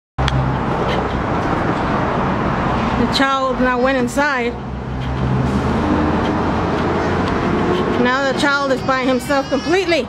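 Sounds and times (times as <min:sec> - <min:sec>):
traffic and engine noise: 0:00.2 - 0:10.0.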